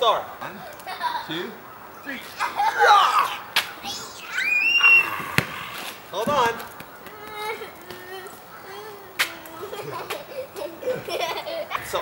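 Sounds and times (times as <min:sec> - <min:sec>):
child squealing: 0:02.4 - 0:05.9
basketball bang: 0:05.1 - 0:06.6.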